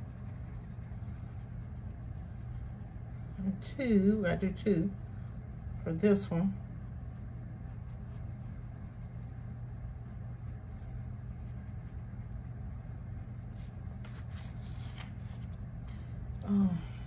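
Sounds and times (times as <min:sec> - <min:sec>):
marker scratching on paper: 0:00.0 - 0:03.0, 0:07.1 - 0:15.6
steady low hum: 0:00.0 - 0:17.0.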